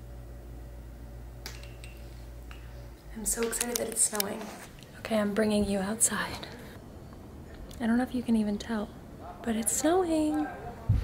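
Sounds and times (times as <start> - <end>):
low hum: 0.0 - 9.2.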